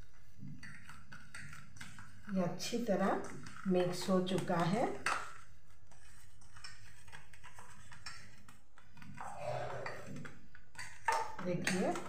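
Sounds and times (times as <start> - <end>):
hands kneading dough: 0.0 - 12.0.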